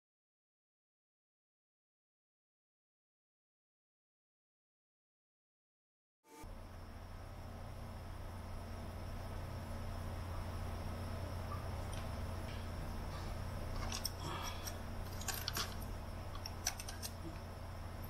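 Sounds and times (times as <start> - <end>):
steady low hum: 6.3 - 18.0
pliers clicking and scraping on wiring: 13.6 - 17.5.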